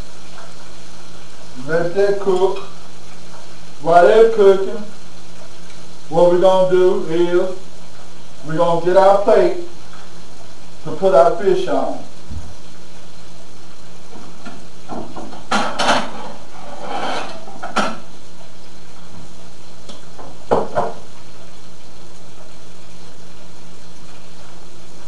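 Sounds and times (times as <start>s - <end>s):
fish frying in oil: 0.0s - 25.0s
plate and utensils clinking: 15.3s - 18.1s.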